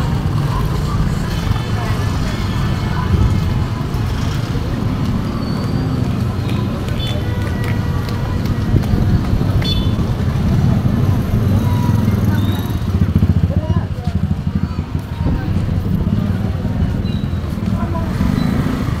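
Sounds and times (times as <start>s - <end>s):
crowd chatter: 0.0s - 19.0s
motorcycle and traffic engines rumbling: 0.0s - 19.0s.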